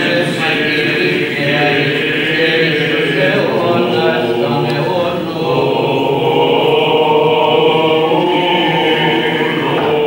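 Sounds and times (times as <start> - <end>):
male chant in reverberant church: 0.0 - 10.0.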